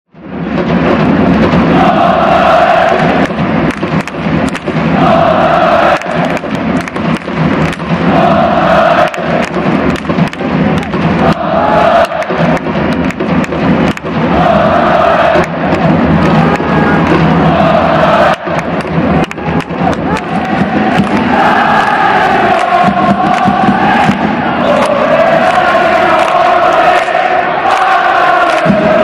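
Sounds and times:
drum beats: 0.2 - 29.0
crowd chanting in unison: 1.5 - 29.0.

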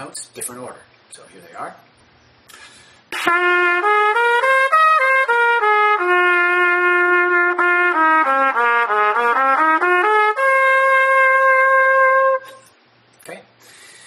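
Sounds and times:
trumpet playing a scale: 3.1 - 12.7.

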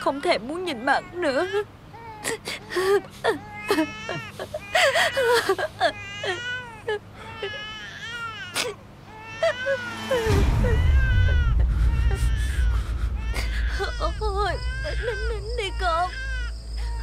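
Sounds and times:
infant crying: 0.8 - 17.0
deep low rumble: 9.6 - 17.0.

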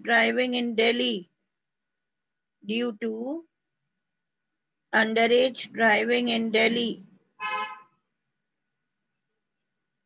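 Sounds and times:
short horn toot: 7.4 - 8.0.

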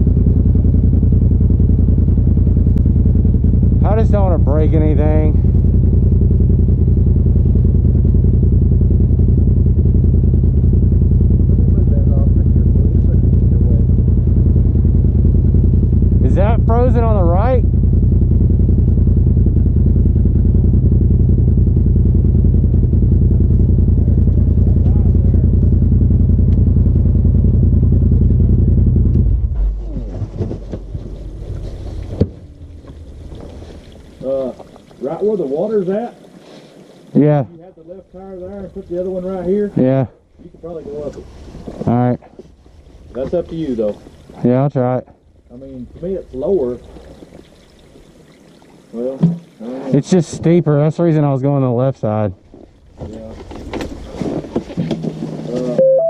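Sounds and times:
vehicle engine idling: 0.0 - 55.8.

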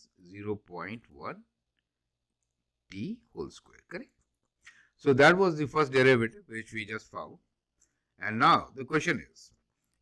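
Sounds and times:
man speaking: 0.0 - 1.8, 2.6 - 10.0.

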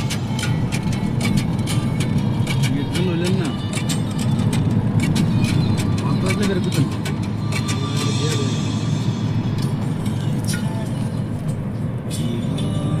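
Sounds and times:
car cabin road rumble: 0.0 - 13.0
music playing: 0.0 - 13.0.

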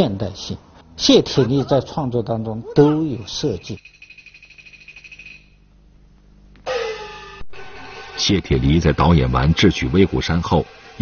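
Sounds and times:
faint low hum: 0.0 - 11.0
high fast-pulsing trill: 6.7 - 11.0.

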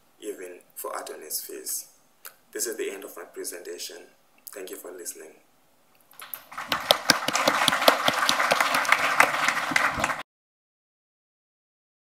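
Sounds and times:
hands clapping: 6.2 - 10.2.

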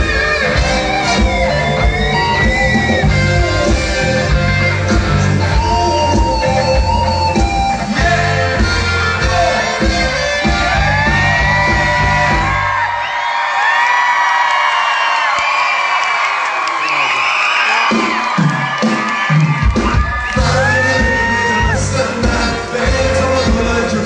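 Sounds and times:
live pop music: 0.0 - 13.2, 16.6 - 24.0
crowd whooping and cheering: 0.0 - 24.0.

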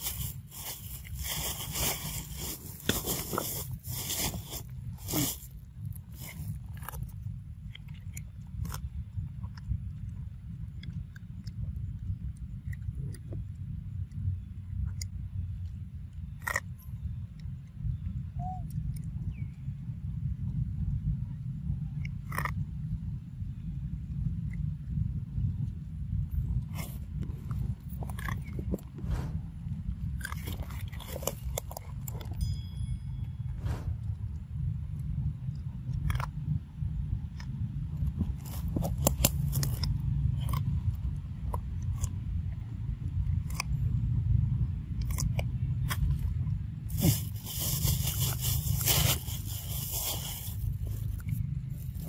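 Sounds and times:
low rumble: 0.0 - 52.0
monkey chewing corn: 30.0 - 32.4, 47.0 - 52.0.

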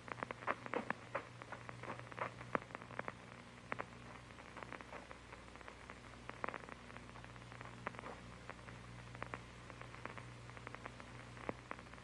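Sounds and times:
film surface clicks and crackles: 0.0 - 12.0
low hum: 0.0 - 12.0.

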